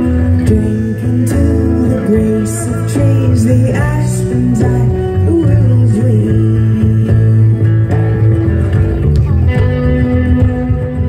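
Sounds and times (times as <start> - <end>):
acoustic guitar: 0.0 - 11.0
bass guitar: 0.0 - 11.0
electric guitar: 0.0 - 11.0.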